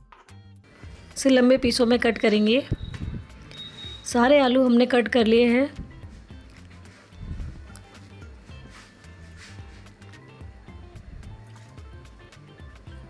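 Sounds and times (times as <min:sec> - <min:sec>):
soft music with bass line: 0:00.0 - 0:13.0.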